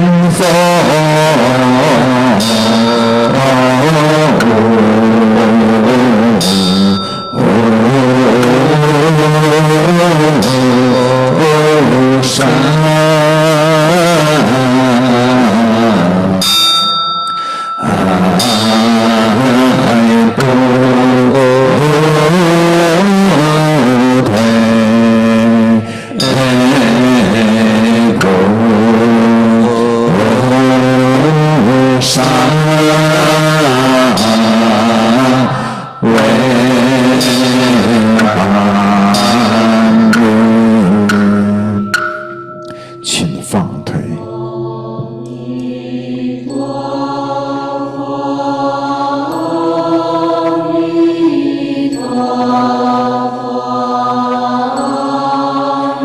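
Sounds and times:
group chanting melodically: 0:00.0 - 0:56.0.

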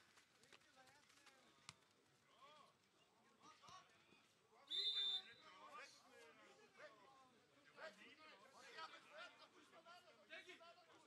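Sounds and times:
referee's whistle blast: 0:04.7 - 0:05.4.

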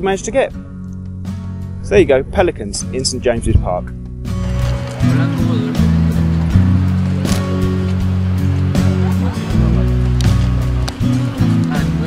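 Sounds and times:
sustained low chords: 0:00.0 - 0:12.0.

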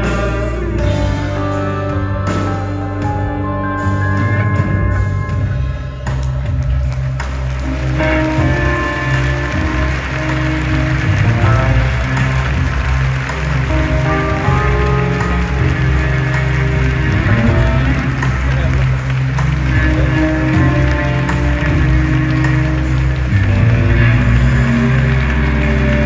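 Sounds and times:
held chords: 0:00.0 - 0:26.0
steady bass: 0:00.0 - 0:26.0.

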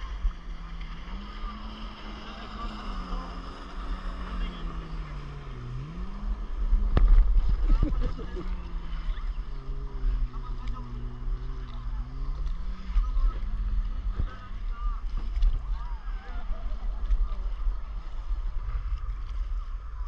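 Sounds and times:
distant watercraft engine droning: 0:00.0 - 0:20.0
rush of noise: 0:00.0 - 0:20.0
wind rumble on microphone: 0:00.0 - 0:20.0.

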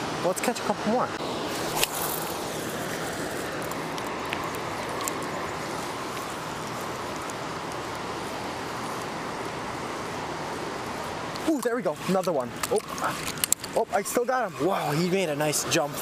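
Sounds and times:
river water rushing: 0:00.0 - 0:16.0.

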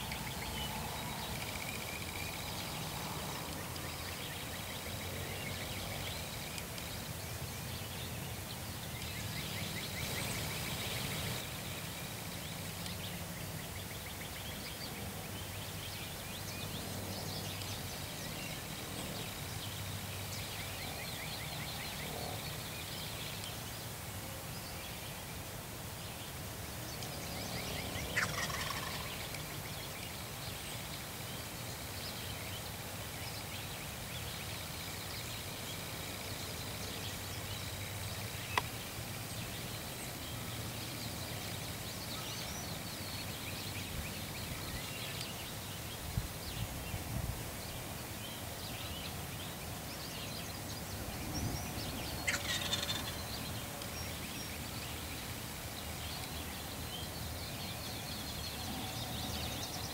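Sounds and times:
faint songbird chirps: 0:00.0 - 0:25.4, 0:26.0 - 0:59.9
turkey gobbling: 0:28.2 - 0:29.0, 0:52.3 - 0:53.1.

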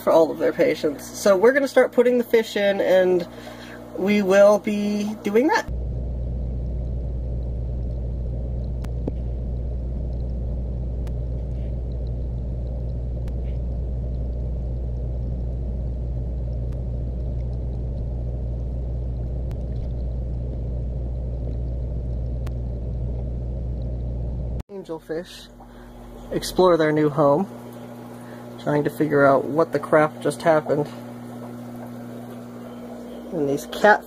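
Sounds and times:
low hum: 0:02.8 - 0:34.0
muffled underwater rumble: 0:05.7 - 0:24.6, 0:25.5 - 0:26.6, 0:27.4 - 0:33.6.

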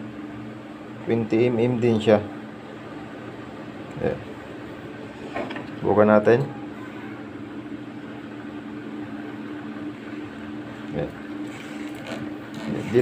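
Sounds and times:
low electrical hum: 0:00.0 - 0:13.0
spring scraping inside plastic conduit: 0:11.5 - 0:13.0.

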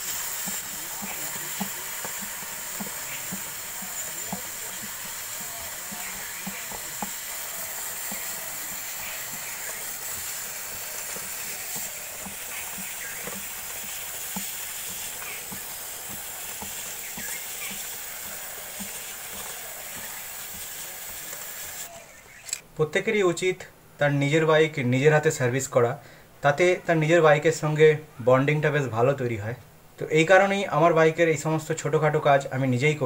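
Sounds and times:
aerosol spray hissing: 0:00.0 - 0:21.9
faint irregular ticks: 0:00.0 - 0:21.9.

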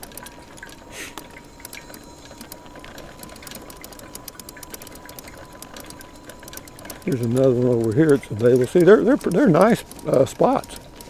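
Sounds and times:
small clicks: 0:00.0 - 0:11.0.

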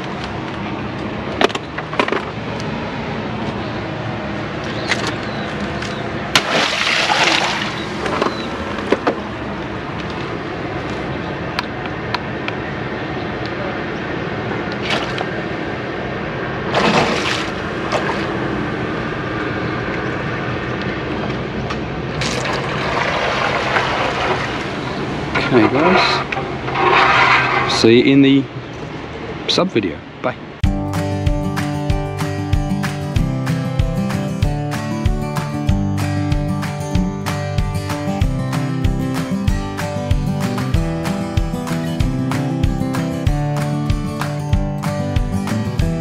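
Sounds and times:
water rushing: 0:06.3 - 0:09.8, 0:14.6 - 0:19.4, 0:21.9 - 0:28.2.

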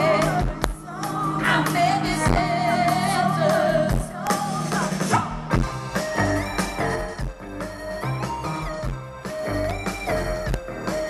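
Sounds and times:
festival crowd: 0:00.0 - 0:11.0
live band music: 0:00.0 - 0:11.0.

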